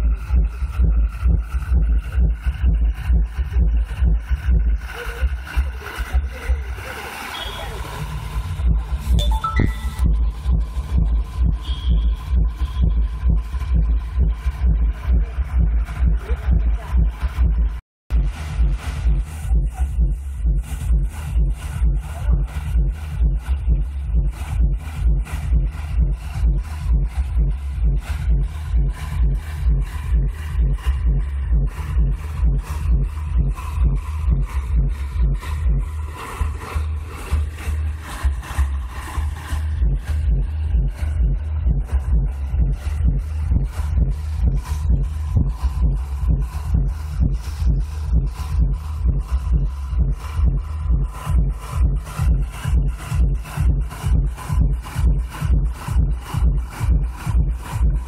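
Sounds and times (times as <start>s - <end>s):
dance music with heavy bass beat: 0.0s - 58.0s.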